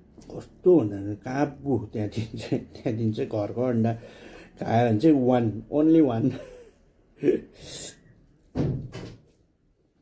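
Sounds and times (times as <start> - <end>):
dull thump: 8.5 - 9.2.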